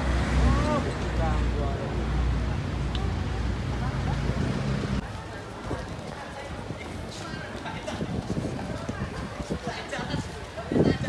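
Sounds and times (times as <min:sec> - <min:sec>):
voices talking: 0:00.0 - 0:11.0.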